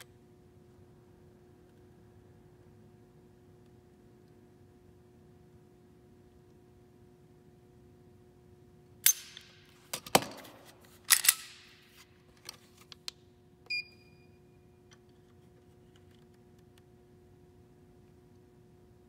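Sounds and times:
metallic pistol clicks: 0:09.0 - 0:09.6, 0:11.1 - 0:11.8
short high gauge beep: 0:13.7 - 0:14.6.

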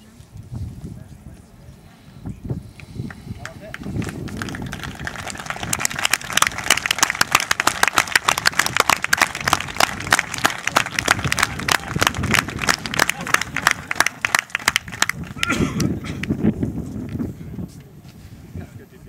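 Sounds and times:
people clapping: 0:02.8 - 0:16.4.

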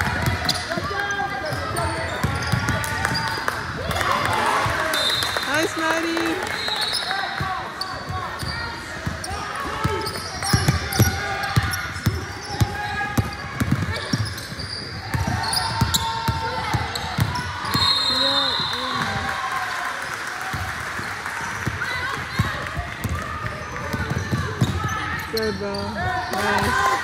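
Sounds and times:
voices echoing in a gym: 0:00.0 - 0:27.0.

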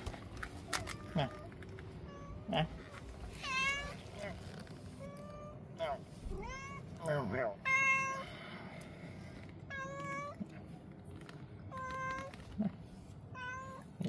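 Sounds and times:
cat meowing: 0:00.7 - 0:08.3, 0:09.7 - 0:10.8, 0:11.7 - 0:14.0.

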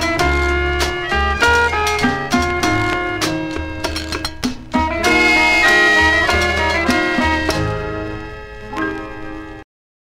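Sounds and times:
band chord ringing: 0:00.1 - 0:09.6
struck note: 0:04.8 - 0:08.4.

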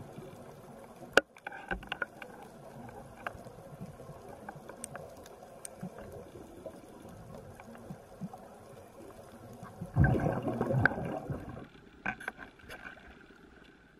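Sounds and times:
water splashing and streaming: 0:00.0 - 0:13.9.

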